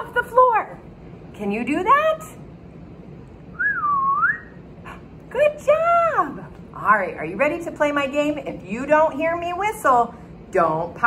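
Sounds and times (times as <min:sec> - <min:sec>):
woman whistling short note: 0:03.6 - 0:04.6.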